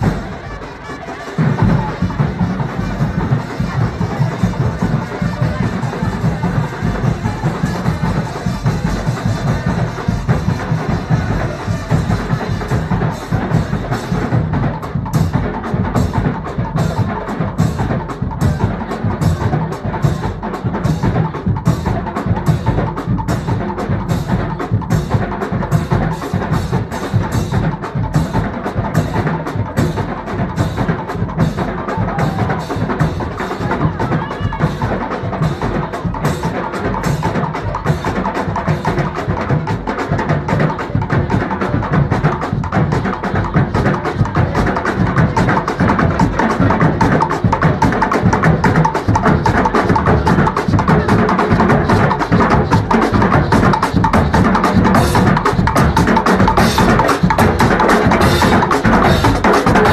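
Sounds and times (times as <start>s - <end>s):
brass section playing: 0.0s - 9.7s
drums: 0.0s - 59.9s
steel pans fast beat: 0.0s - 59.9s.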